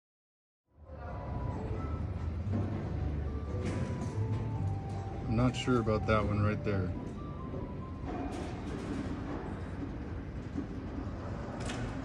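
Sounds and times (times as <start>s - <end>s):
faint background music: 0.7s - 12.0s.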